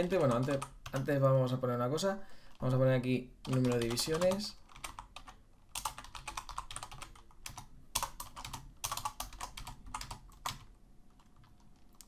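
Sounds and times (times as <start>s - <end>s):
computer keyboard typing: 0.0s - 1.2s, 3.4s - 12.0s.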